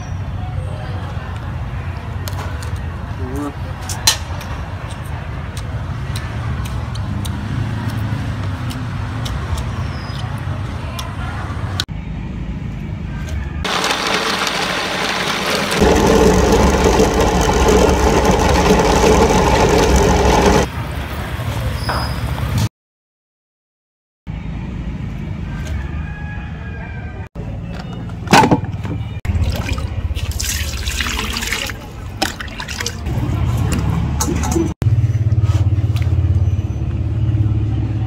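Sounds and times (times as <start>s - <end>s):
meat grinder motor running: 13.7s - 20.7s.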